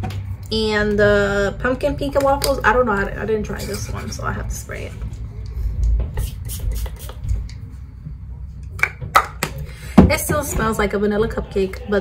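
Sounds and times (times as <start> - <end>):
spray bottle hisses: 6.2 - 7.2.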